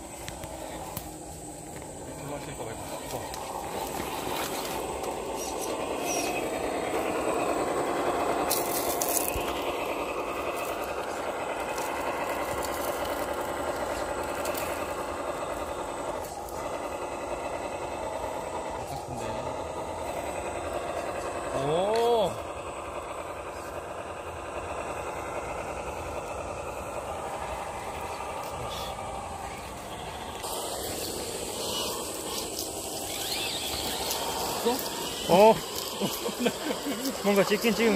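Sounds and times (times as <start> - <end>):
toy car motor whining: 0.0 - 37.9.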